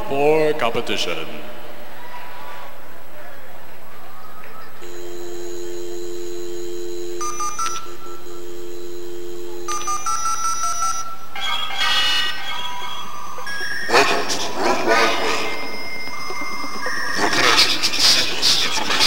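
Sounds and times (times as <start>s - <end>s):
telephone dial tone: 4.8s - 11.1s
touch-tone dialing beeps: 4.8s - 11.1s.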